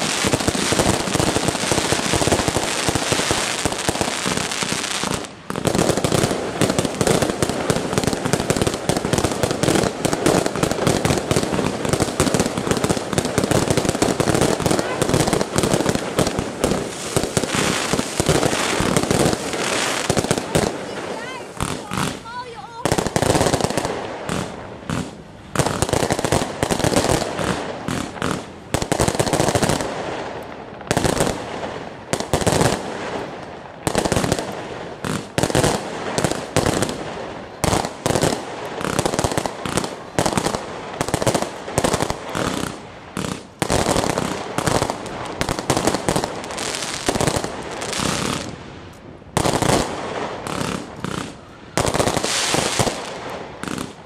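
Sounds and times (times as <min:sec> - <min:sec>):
fireworks bangs and crackles: 0:00.0 - 0:54.0.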